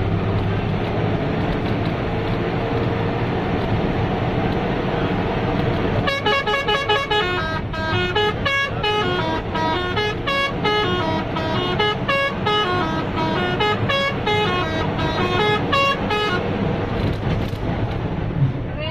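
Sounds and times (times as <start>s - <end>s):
engine and road rumble: 0.0s - 18.9s
bus musical horn: 5.8s - 16.9s.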